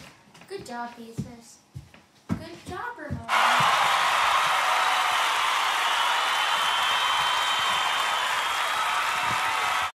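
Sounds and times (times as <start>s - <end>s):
audience applause: 3.3s - 10.0s.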